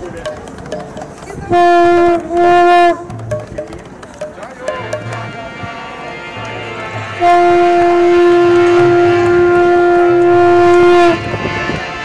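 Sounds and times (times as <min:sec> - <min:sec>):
conch shell blown: 0:01.5 - 0:03.3, 0:04.8 - 0:12.0.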